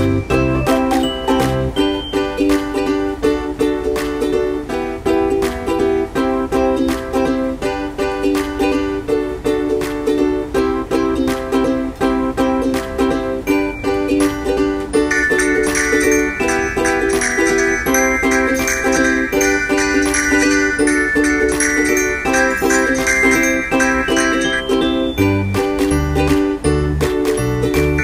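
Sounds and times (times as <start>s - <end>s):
plucked ukulele tune: 0.0s - 28.0s.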